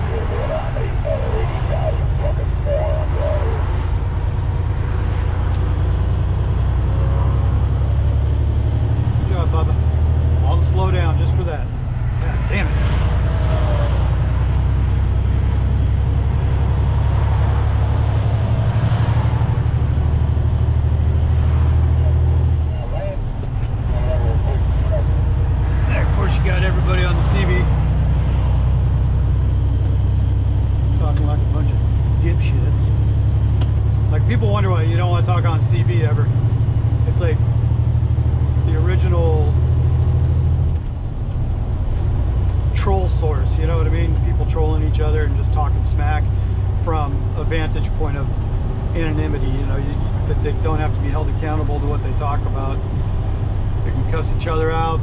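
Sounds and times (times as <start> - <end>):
cb radio voices: 0.0 - 4.2, 10.5 - 14.5, 21.9 - 27.8
truck engine and road drone: 0.0 - 55.0.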